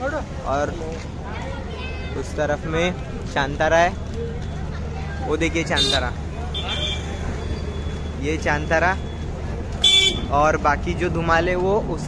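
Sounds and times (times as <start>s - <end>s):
motor scooters passing: 0.3s - 11.6s.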